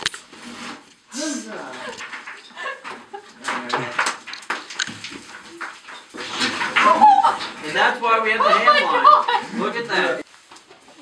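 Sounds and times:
rock and timber clattering underfoot: 0.0s - 8.6s.

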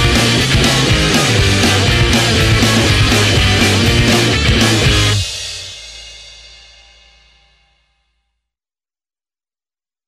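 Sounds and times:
rock band final chord: 0.0s - 6.4s.

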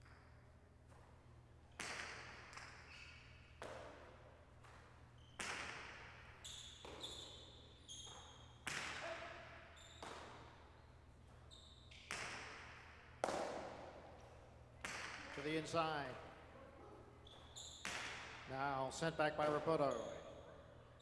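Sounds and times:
short high squeaks: 6.4s - 10.0s, 10.8s - 12.0s, 17.2s - 17.9s.

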